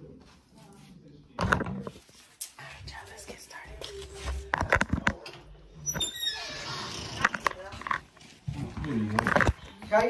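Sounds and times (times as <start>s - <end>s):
muffled voices: 0.0s - 10.0s.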